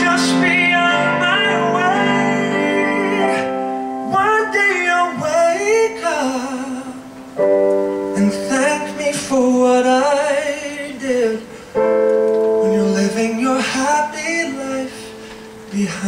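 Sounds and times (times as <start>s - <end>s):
man singing a slow ballad: 0.0s - 11.9s, 12.5s - 16.0s
piano chords: 0.0s - 16.0s.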